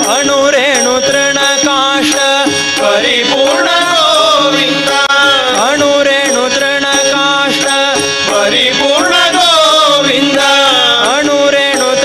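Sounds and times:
harmonium: 0.0s - 12.0s
man singing devotional song: 0.0s - 12.0s
tabla strokes: 0.0s - 12.0s.

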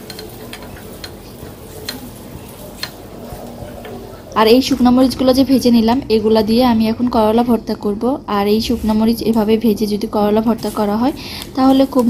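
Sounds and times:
spatula clicking against pan: 0.0s - 1.2s, 1.8s - 2.0s
oil sizzling in a frying pan: 0.0s - 3.1s.

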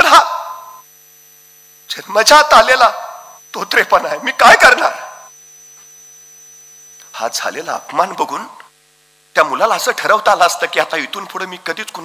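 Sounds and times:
electrical mains hum: 0.0s - 12.0s
echoing man's voice: 1.9s - 5.3s.

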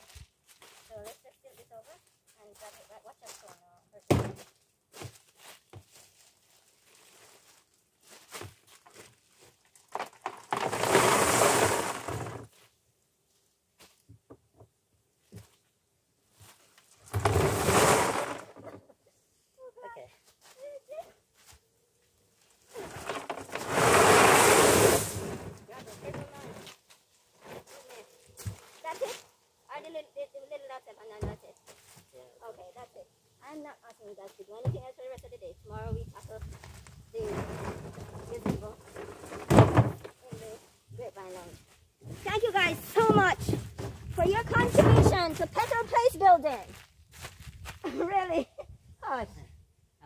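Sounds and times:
gravel pouring onto a tarp: 10.4s - 12.4s, 17.1s - 18.5s, 22.8s - 25.7s.

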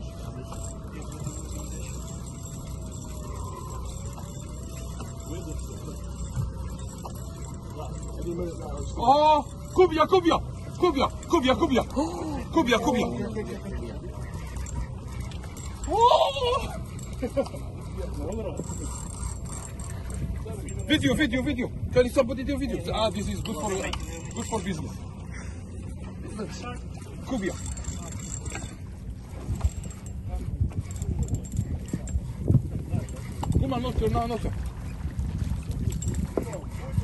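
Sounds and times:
faint voices: 0.0s - 21.1s
wind and water around boat: 0.0s - 37.0s
person shouting: 15.9s - 16.8s.

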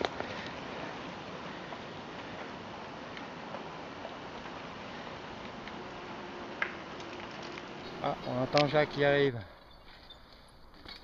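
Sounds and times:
low steady outdoor hiss: 0.0s - 11.0s.

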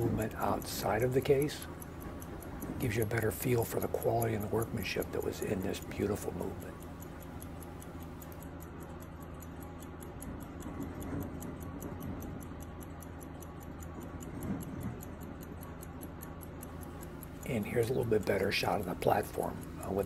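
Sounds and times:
clock ticking: 0.0s - 20.0s.

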